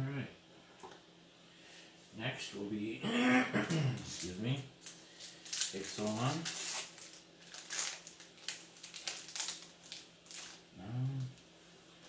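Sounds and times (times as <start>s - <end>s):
foil wrapper crinkling: 4.0s - 10.7s.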